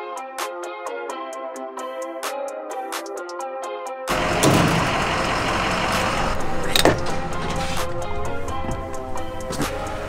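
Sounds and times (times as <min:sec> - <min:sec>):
background music: 0:00.0 - 0:10.0
fuel nozzle rushing: 0:04.1 - 0:10.0
fuel nozzle knocks: 0:06.4 - 0:10.0.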